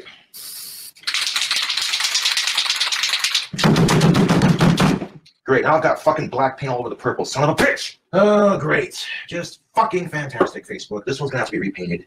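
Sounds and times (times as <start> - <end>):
spray can hiss: 0.4 - 1.6
spray can ball rattling: 0.4 - 3.6
man speaking: 5.5 - 12.0.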